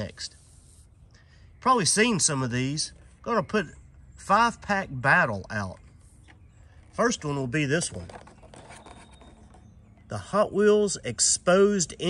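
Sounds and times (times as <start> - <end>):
blister pack rubbing and scratching: 7.9 - 9.7.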